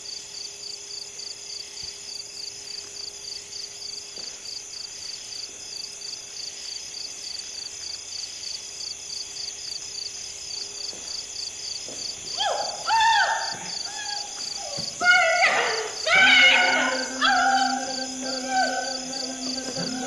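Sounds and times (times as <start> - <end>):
crickets chirping: 0.0 - 20.0
high-pitched insect hum: 0.0 - 20.0
faint low hum: 13.6 - 20.0.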